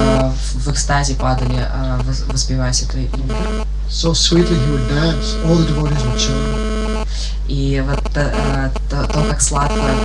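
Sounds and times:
electrical mains hum: 0.0 - 10.0
man's voice: 3.3 - 6.6.

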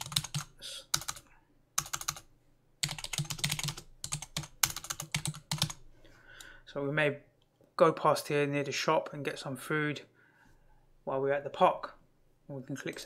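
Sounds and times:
typing on computer keyboard: 0.0 - 1.2, 1.8 - 2.2, 2.8 - 5.8.

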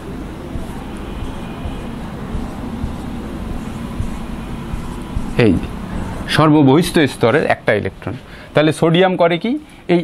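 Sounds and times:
low rumbling background noise: 0.0 - 10.0
marker tapping on whiteboard: 0.5 - 5.7.

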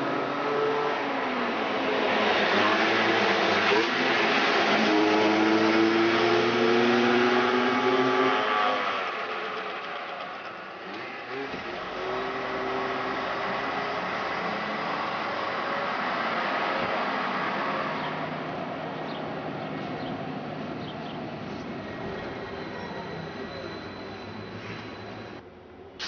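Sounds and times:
street traffic: 0.0 - 26.0.

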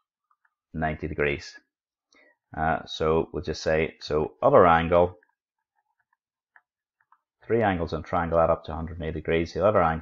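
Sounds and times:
stylus tapping tablet screen: 4.8 - 7.6.

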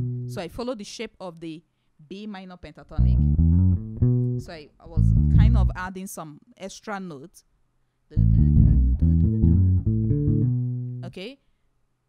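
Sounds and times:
electric bass guitar playing: 0.0 - 0.5, 3.0 - 5.9, 8.2 - 11.1.

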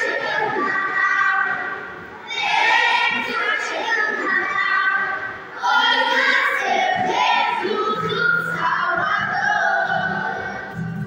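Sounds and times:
children's choir singing: 0.0 - 11.0.

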